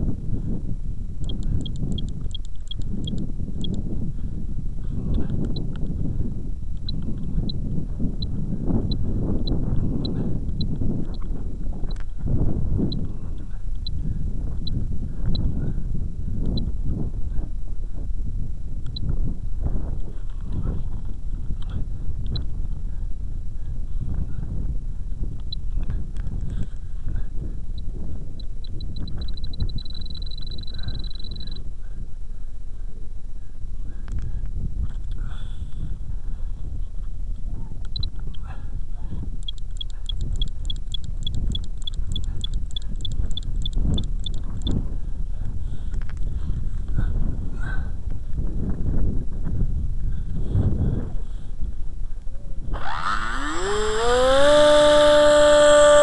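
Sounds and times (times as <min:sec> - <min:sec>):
wind on microphone: 0:00.0 - 0:56.0
steady beep tone: 0:01.2 - 0:03.8, 0:28.4 - 0:31.6, 0:39.4 - 0:44.7
transmitter beeping pips: 0:01.2 - 0:03.8, 0:28.4 - 0:31.6, 0:39.4 - 0:44.8.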